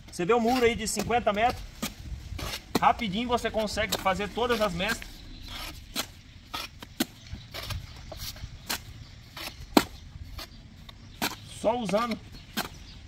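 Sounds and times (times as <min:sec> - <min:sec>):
trowel scraping mortar: 0:00.4 - 0:01.1, 0:01.8 - 0:03.0, 0:03.6 - 0:10.6.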